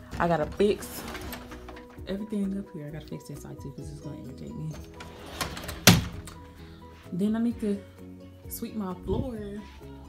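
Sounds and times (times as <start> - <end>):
closet door thud: 5.4 - 6.4.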